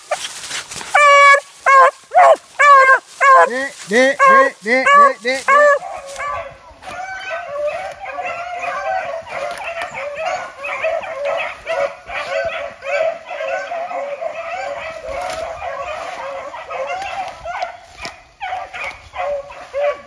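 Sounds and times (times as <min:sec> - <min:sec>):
hounds baying and yelping: 0:00.0 - 0:20.0.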